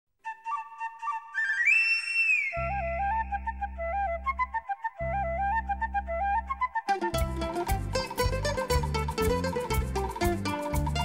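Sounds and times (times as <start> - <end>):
flute melody: 0.2 - 11.0.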